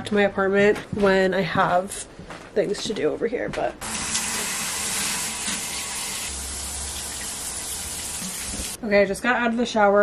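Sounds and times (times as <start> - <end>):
shower spraying onto tiles: 3.8 - 8.8.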